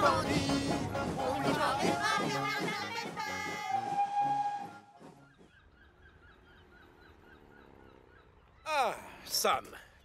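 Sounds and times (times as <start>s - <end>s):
children's group song with music: 0.0s - 3.7s.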